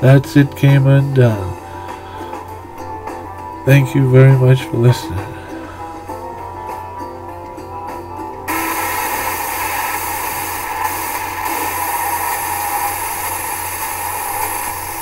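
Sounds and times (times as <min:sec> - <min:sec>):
backing music held notes: 0:00.0 - 0:09.4
steady static hiss: 0:00.0 - 0:15.0.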